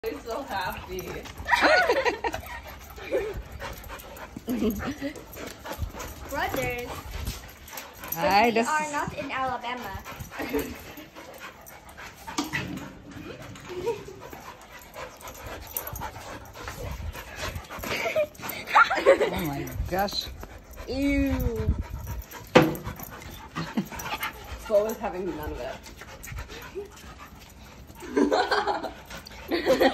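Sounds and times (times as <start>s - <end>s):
dogs scuffling: 0.0s - 29.9s.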